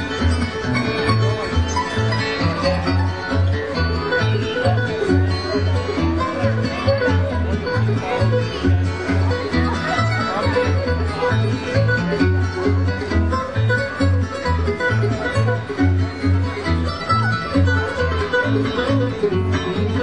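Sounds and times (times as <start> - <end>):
acoustic guitar: 0.0 - 20.0
mandolin: 0.0 - 20.0
upright bass plucking: 0.0 - 20.0.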